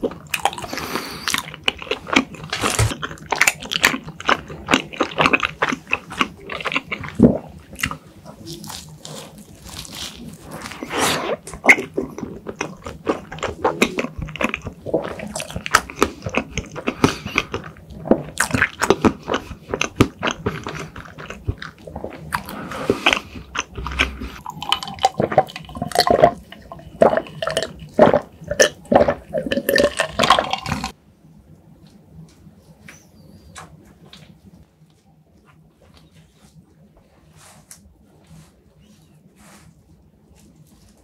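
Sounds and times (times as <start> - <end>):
wet chewing smacks: 11.3 - 31.0.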